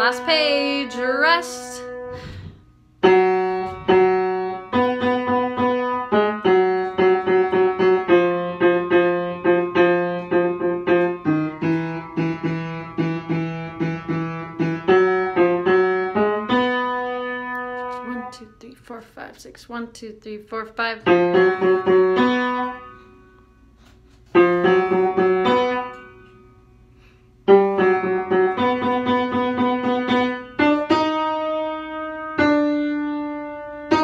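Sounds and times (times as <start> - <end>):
piano chords: 0.0 - 18.6, 20.8 - 23.7, 24.4 - 34.0.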